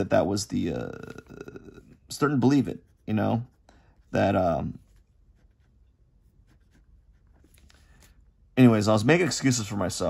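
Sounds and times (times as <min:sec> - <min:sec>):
pen scratching on paper: 0:02.3 - 0:07.5.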